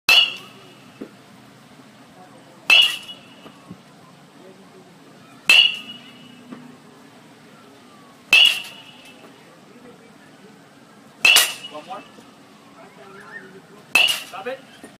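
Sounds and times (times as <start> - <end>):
baseball bat hitting balls: 0.1 - 1.2, 2.7 - 3.7, 5.4 - 6.7, 8.3 - 9.4, 11.2 - 12.2, 13.9 - 15.0.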